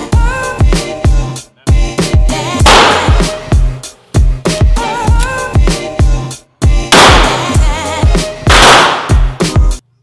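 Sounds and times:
hip-hop music: 0.0 - 10.0
handgun shots echoing indoors: 2.6 - 3.2, 6.9 - 7.6, 8.5 - 9.3.

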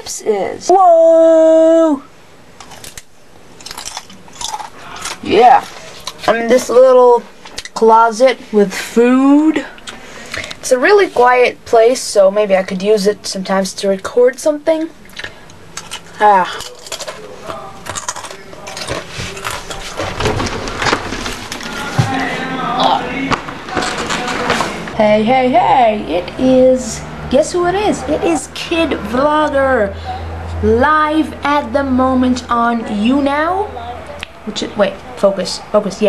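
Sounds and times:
person crunching hard chip: 2.6 - 6.2, 15.1 - 21.6.

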